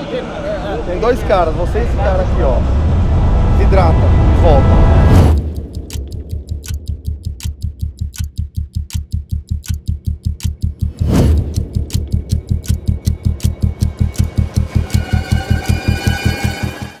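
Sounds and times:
fast pulsing bass beat: 0:05.3 - 0:17.0
ticking clicks: 0:05.3 - 0:17.0
whoosh: 0:10.8 - 0:14.3.

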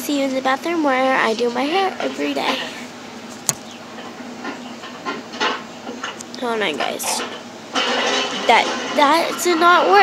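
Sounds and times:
phone handling noise: 0:03.4 - 0:03.7
sharp click: 0:03.4 - 0:03.7.

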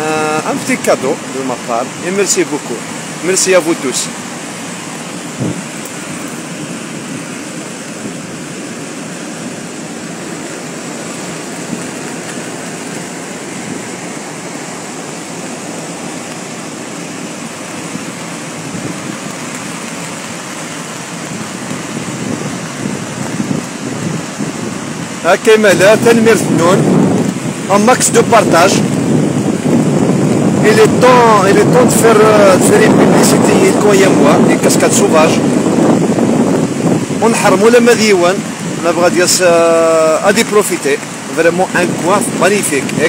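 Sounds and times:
waterfall roaring: 0:00.0 - 0:43.0.

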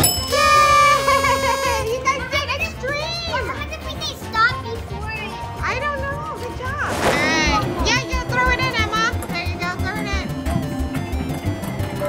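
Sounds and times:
girls cheering and exclaiming: 0:00.2 - 0:03.8.

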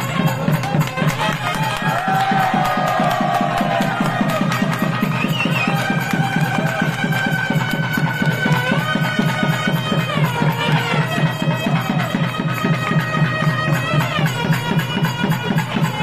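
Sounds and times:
fast drumming: 0:00.0 - 0:16.0
reed pipe melody: 0:00.0 - 0:16.0.

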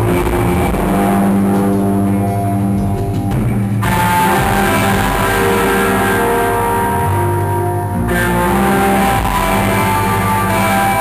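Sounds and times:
distorted electric guitar chord: 0:00.0 - 0:11.0
live rock band playing: 0:00.0 - 0:11.0.

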